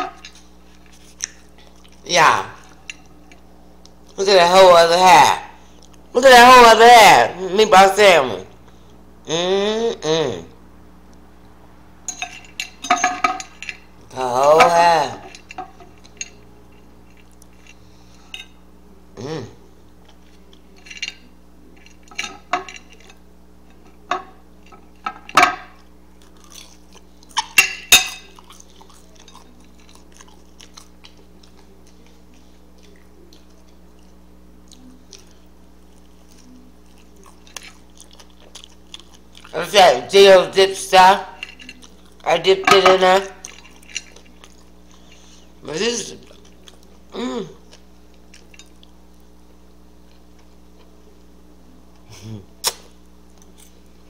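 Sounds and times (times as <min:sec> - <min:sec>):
faint low hum: 0:00.0 - 0:54.0
chewing and mouth smacks: 0:00.3 - 0:04.2, 0:05.8 - 0:06.0, 0:25.8 - 0:27.6, 0:28.2 - 0:39.6, 0:41.5 - 0:42.3, 0:43.3 - 0:45.2, 0:46.2 - 0:49.3, 0:52.6 - 0:53.8
person humming mmm: 0:09.2 - 0:10.6, 0:19.1 - 0:19.8, 0:47.1 - 0:47.8, 0:52.0 - 0:52.8.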